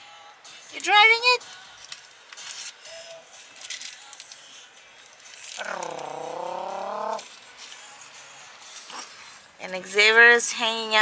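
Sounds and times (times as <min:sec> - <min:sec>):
person's drawn-out vocal sound: 0:05.6 - 0:07.3.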